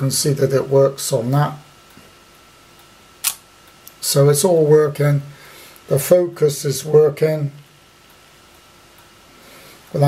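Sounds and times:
camera shutter click: 0:03.2 - 0:03.4.

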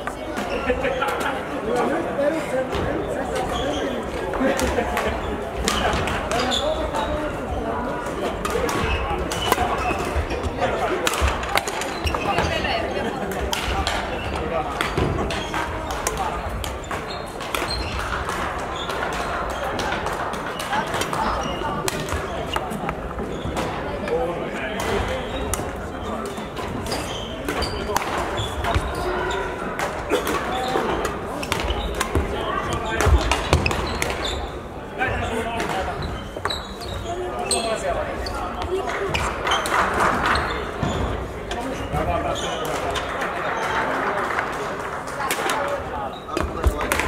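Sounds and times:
hall chatter: 0:00.0 - 0:47.0
racket hitting shuttlecock: 0:29.7 - 0:34.2.

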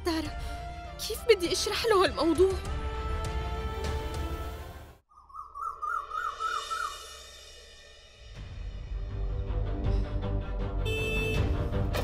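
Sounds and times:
dramatic music score: 0:00.0 - 0:05.0, 0:06.4 - 0:12.0
warbling bird-like trill: 0:05.1 - 0:07.2.

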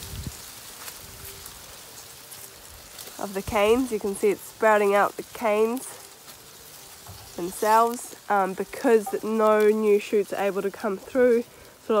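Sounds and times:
dry leaves rustling: 0:00.0 - 0:12.0.

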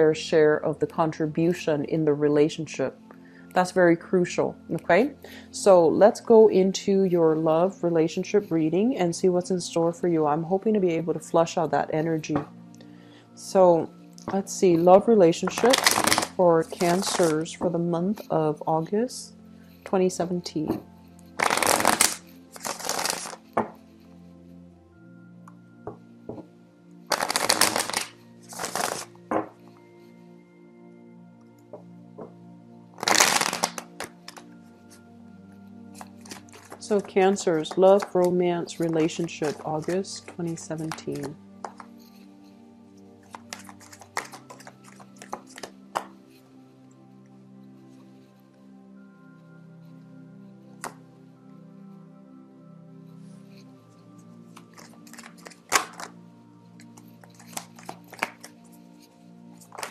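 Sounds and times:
soft background music: 0:00.0 - 0:59.9
cards shuffling flutter: 0:15.5 - 0:17.4, 0:21.4 - 0:23.6, 0:27.1 - 0:29.1, 0:33.0 - 0:34.5, 0:35.9 - 0:42.2, 0:43.2 - 0:46.1, 0:54.6 - 0:56.1, 0:56.9 - 0:58.6, 0:59.6 - 0:59.9
cards snapping: 0:15.6 - 0:17.4, 0:21.4 - 0:23.4, 0:27.1 - 0:29.1, 0:33.0 - 0:34.5, 0:36.0 - 0:37.0, 0:38.9 - 0:41.9, 0:43.2 - 0:46.1, 0:54.6 - 0:56.1, 0:56.9 - 0:58.6, 0:59.6 - 0:59.9.

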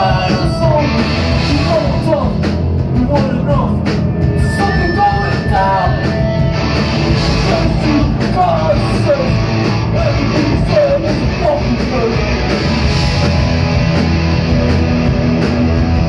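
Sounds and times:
punk rock band playing: 0:00.0 - 0:16.0.

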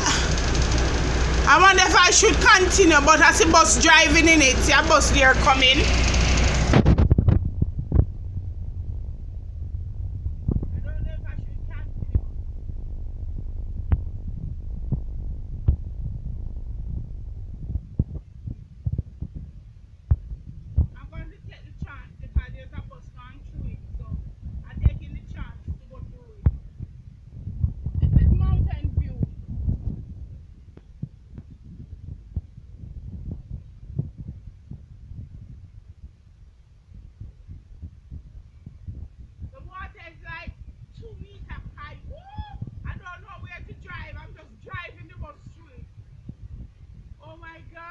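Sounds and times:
vehicle engine idling: 0:00.0 - 0:06.8
car engine rumble: 0:00.0 - 0:47.9.

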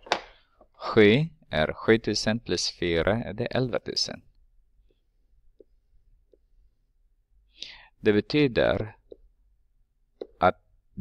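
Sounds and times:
breath in: 0:07.5 - 0:07.9.

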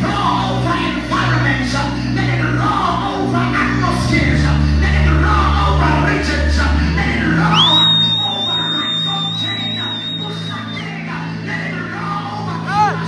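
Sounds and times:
gospel worship music: 0:00.0 - 0:13.0
man singing: 0:00.0 - 0:13.0.

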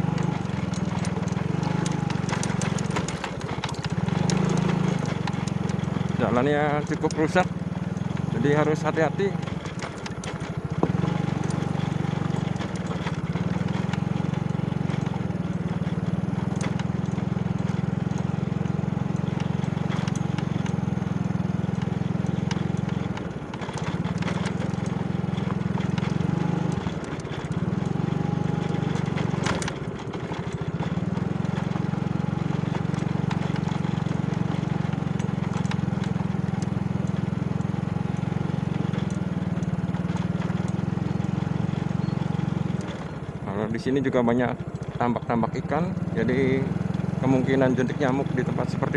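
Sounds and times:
motorcycle knocks and rattles: 0:00.0 - 0:48.9
small motorcycle engine: 0:00.0 - 0:48.9.

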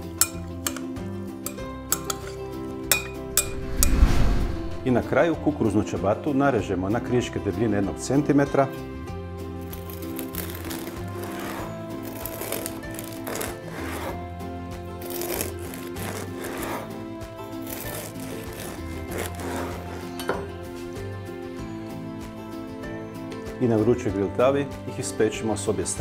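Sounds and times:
background music with sustained notes: 0:00.0 - 0:26.0
bread knife sawing through bread: 0:09.6 - 0:20.2.

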